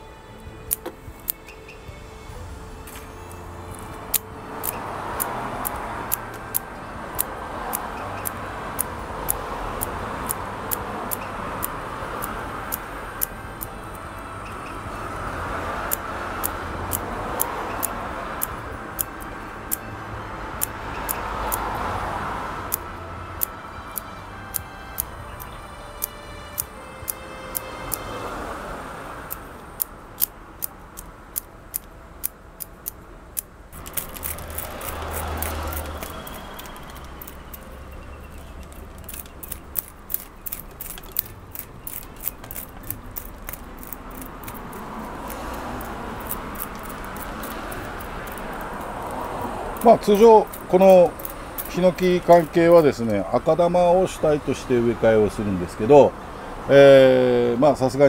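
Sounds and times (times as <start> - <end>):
scissors snipping roots: 0.6 - 1.4, 2.9 - 14.1, 15.8 - 19.8, 20.6 - 21.8, 22.7 - 28.1, 29.2 - 53.2.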